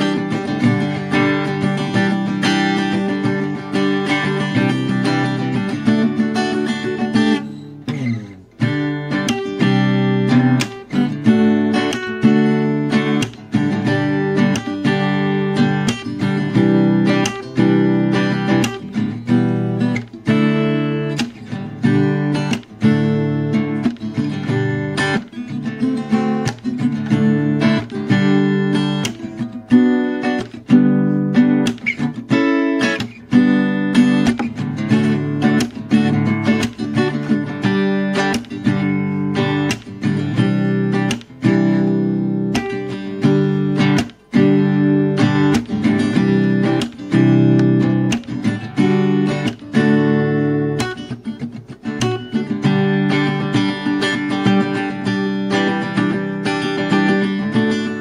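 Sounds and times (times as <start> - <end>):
acoustic guitar strumming chords: 0.0 - 58.0.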